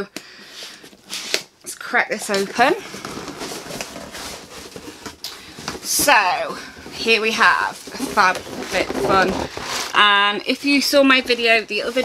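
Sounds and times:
cardboard box rustling and knocking: 0:02.5 - 0:10.2.

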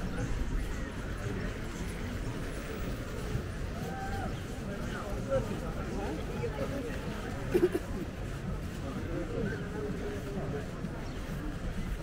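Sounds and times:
faint chatter: 0:00.0 - 0:12.0.

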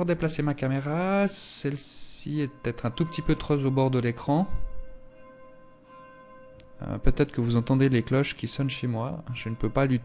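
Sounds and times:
church bells ringing: 0:00.0 - 0:10.0.

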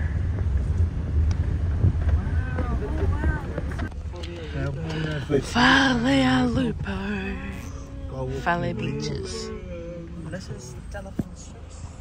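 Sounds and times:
wind buffeting microphone: 0:00.0 - 0:04.8
car road noise: 0:00.0 - 0:12.0.

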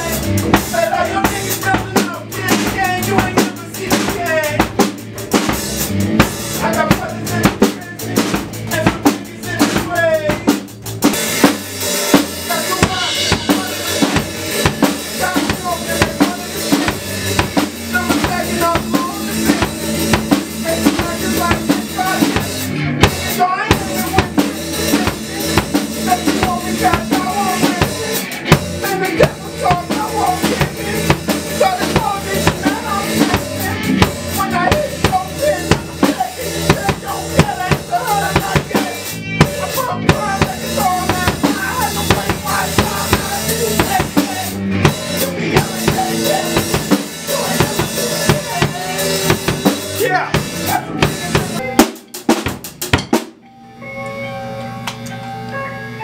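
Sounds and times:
drum kit beat: 0:00.0 - 0:53.5
band playing: 0:00.0 - 0:56.0.

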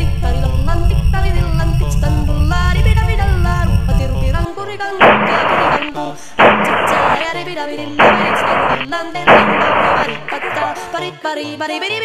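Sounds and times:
song with singing: 0:00.0 - 0:12.0
loud revolver shot: 0:05.0 - 0:05.8, 0:06.4 - 0:07.3, 0:08.0 - 0:10.8.

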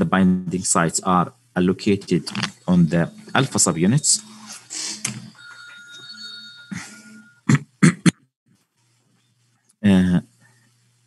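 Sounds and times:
steady high electronic tone: 0:00.8 - 0:07.5.

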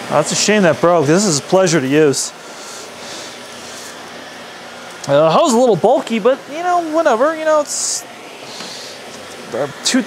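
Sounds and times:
vacuum cleaner on carpet: 0:00.0 - 0:10.0.

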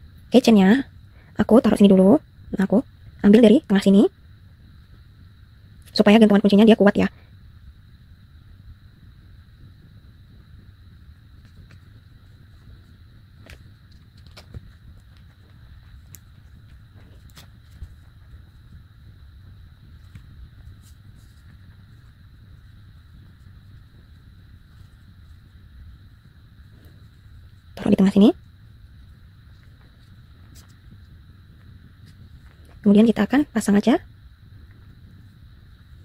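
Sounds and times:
steady low hiss: 0:00.0 - 0:36.0.

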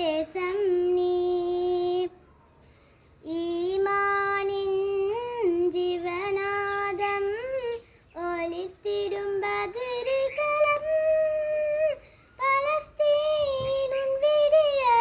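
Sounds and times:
girl singing unaccompanied: 0:00.0 - 0:02.3, 0:03.0 - 0:15.0.

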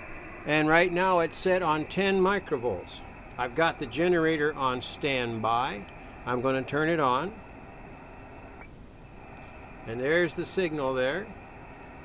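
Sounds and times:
radio receiver hiss: 0:00.0 - 0:12.0.

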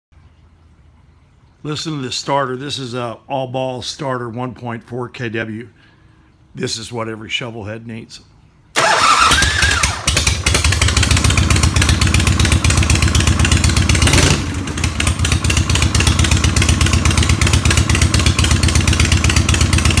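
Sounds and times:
motorcycle engine idling: 0:08.8 - 0:20.0.

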